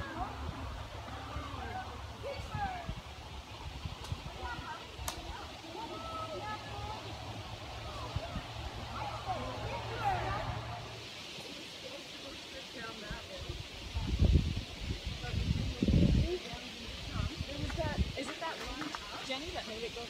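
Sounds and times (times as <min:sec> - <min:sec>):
distant indistinct voices: 0:00.0 - 0:20.0.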